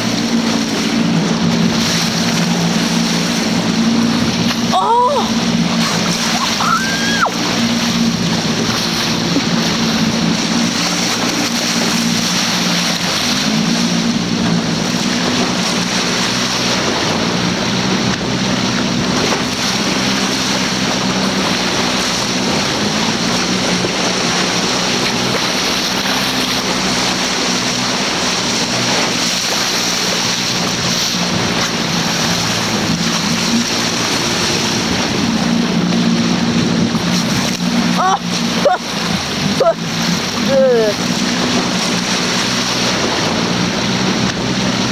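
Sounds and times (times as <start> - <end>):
boat motor humming: 0.0 - 44.9
water rushing: 0.0 - 44.9
wind: 0.0 - 44.9.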